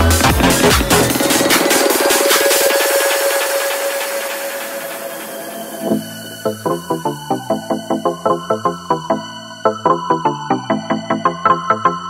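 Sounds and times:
electronic dance track: 0.0 - 12.0.

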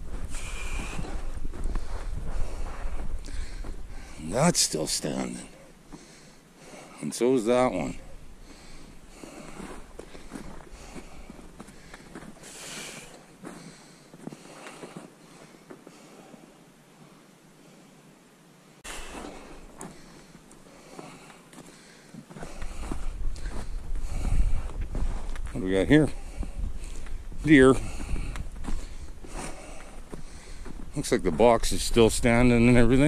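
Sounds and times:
footsteps in snow: 0.0 - 6.0, 7.7 - 16.4, 18.8 - 33.0.

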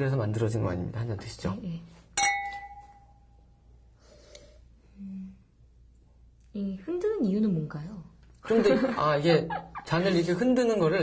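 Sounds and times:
wine glasses clinking: 2.2 - 3.2.

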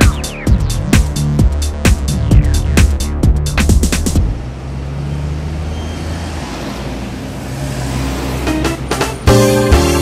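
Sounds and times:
car engines idling: 0.0 - 6.2
street noise: 0.0 - 10.0.

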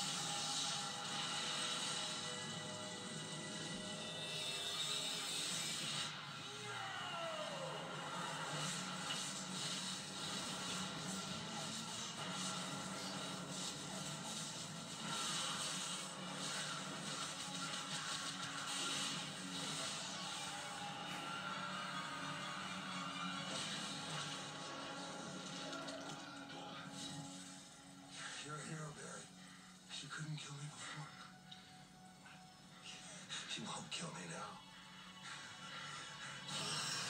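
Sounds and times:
ominous film score: 0.0 - 37.0.

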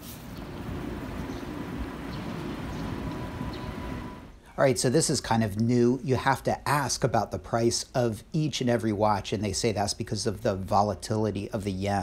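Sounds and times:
city traffic rumble: 0.0 - 6.3.

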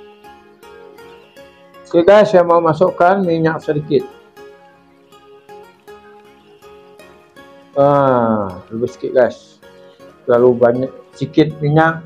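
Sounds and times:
plucked-string music: 0.0 - 12.0.

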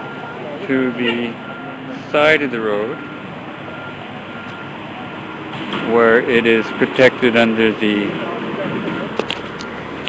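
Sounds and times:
street noise hum: 0.0 - 10.0
truck reversing alarm beeping: 0.0 - 10.0.

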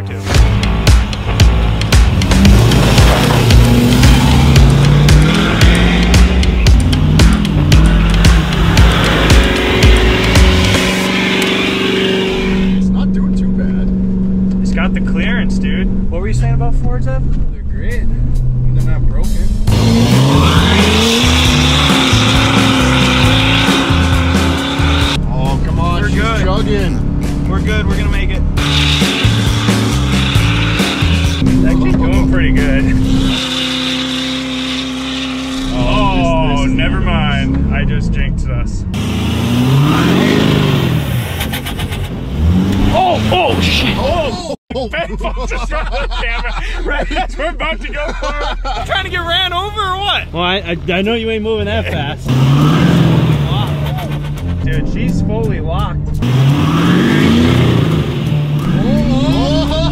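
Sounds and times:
background music with steady beat: 0.0 - 12.7, 17.9 - 34.6
truck engine revving: 0.0 - 44.6, 45.2 - 59.9.

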